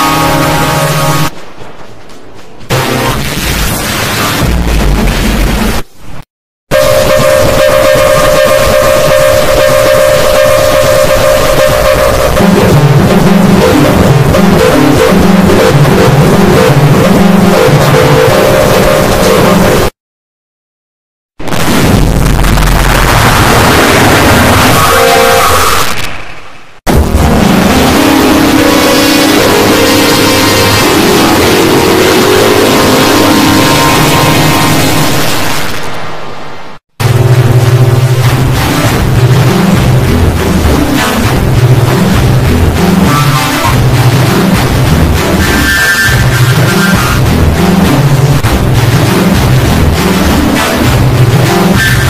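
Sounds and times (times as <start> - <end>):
distorted electronic tone: 0.0 - 1.5, 2.7 - 20.0, 21.4 - 52.0
harsh crackling noise: 0.0 - 20.0, 21.4 - 52.0.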